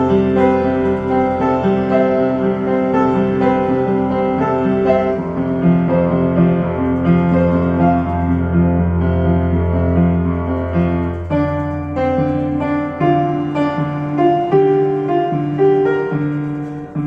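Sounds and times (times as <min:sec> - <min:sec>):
upright piano playing chords: 0:00.0 - 0:17.0.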